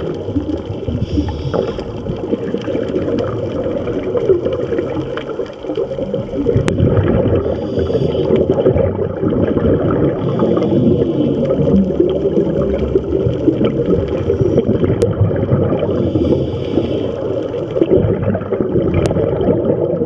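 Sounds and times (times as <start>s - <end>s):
underwater bubbling and crackling: 0.0s - 20.0s.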